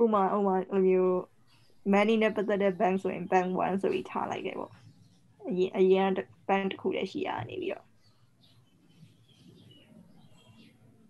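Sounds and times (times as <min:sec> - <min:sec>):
person speaking: 0:00.0 - 0:01.2, 0:01.9 - 0:04.7, 0:05.4 - 0:07.8.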